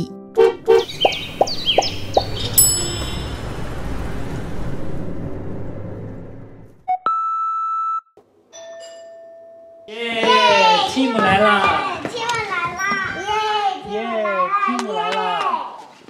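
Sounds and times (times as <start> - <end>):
bright chime: 2.5 - 3.6
doorbell ding-dong: 2.6 - 3.6, 8.6 - 9.9.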